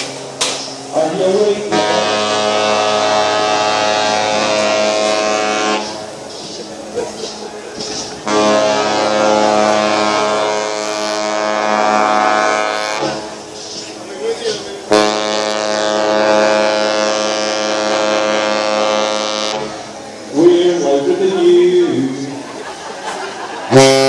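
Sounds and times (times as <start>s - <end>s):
ship horn blasts: 0.9s - 6.2s, 8.2s - 13.4s, 14.8s - 21.1s, 23.6s - 24.0s.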